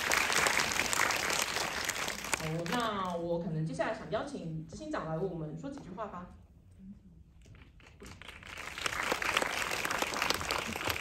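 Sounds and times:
audience applause: 0.0 - 2.5, 8.2 - 11.0.

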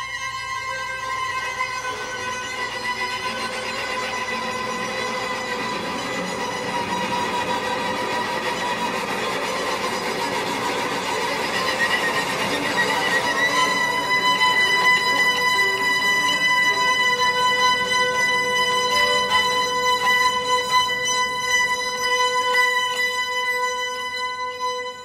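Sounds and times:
electric string quartet playing: 0.0 - 25.0.

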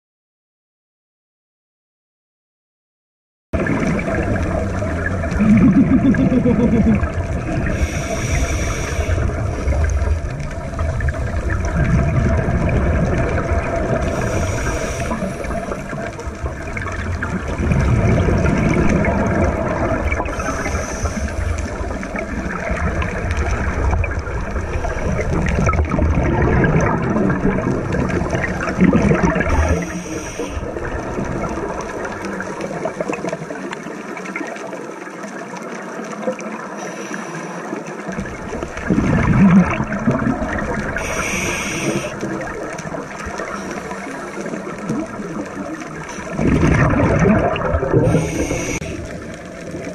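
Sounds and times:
low underwater rumble: 3.6 - 34.0, 38.0 - 49.9
exhaled bubbles bursting: 3.6 - 36.7, 38.0 - 49.9
scuba regulator breathing: 7.6 - 9.9, 14.0 - 16.0, 20.3 - 22.0, 29.4 - 30.9, 36.7 - 37.9, 40.9 - 42.3, 43.4 - 44.7, 47.9 - 49.4.

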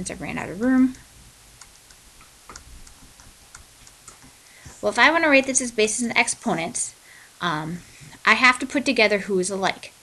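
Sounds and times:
stylus tapping on writing surface: 2.2 - 4.4.

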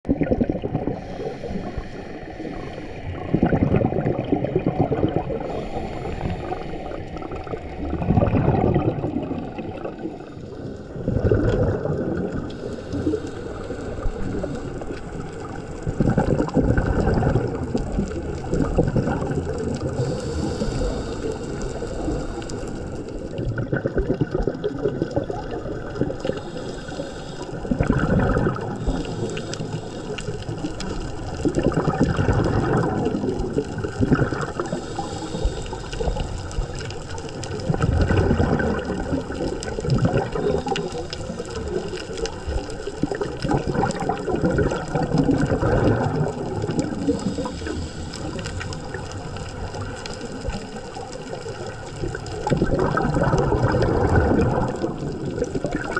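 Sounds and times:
exhaled bubbles gurgling: 0.0 - 55.9
underwater water rush: 0.0 - 55.9.

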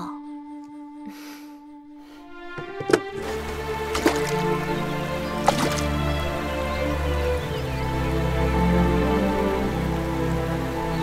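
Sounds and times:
soft background music: 2.0 - 11.0.

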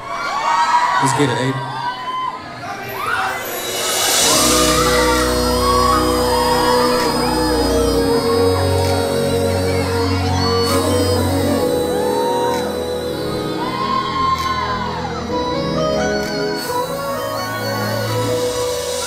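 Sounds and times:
audience cheering and whooping: 0.0 - 19.0
keyboard chords: 3.5 - 19.0
deep bass: 4.2 - 18.9.

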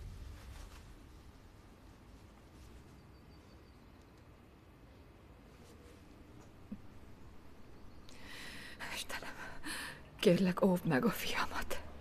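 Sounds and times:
person breathing: 8.1 - 8.8, 9.4 - 10.1
person whispering: 8.8 - 9.6.

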